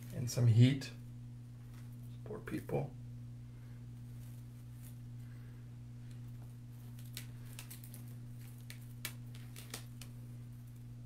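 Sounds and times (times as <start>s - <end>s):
steady low hum: 0.0s - 11.0s
clicks and rustles of stems: 3.9s - 5.4s, 6.0s - 11.0s.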